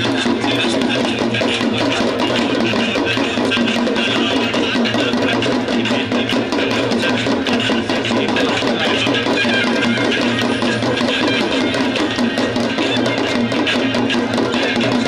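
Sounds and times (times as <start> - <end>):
rapid percussion strikes: 0.0 - 15.0.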